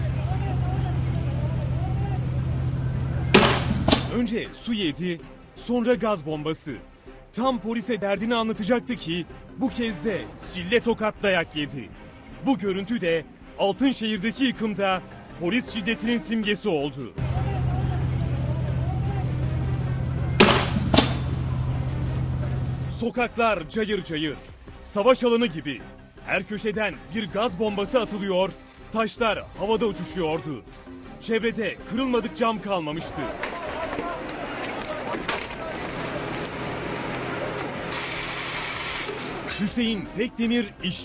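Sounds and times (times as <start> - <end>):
sharp bangs with ring: 3.4 - 4.2, 20.4 - 21.4.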